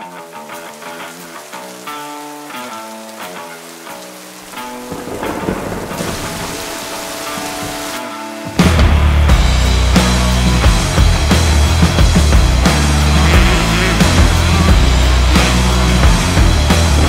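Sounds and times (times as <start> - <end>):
heavy rain falling: 0.0 - 17.0
slow plucked-note music: 1.5 - 17.0.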